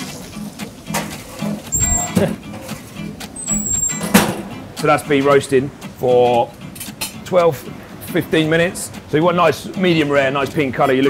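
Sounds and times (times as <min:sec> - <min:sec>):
background music with low pulse: 0:00.0 - 0:11.0.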